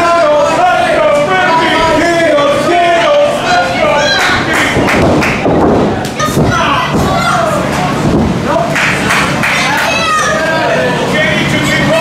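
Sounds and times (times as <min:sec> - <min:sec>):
voices in a hall: 0:00.0 - 0:12.0.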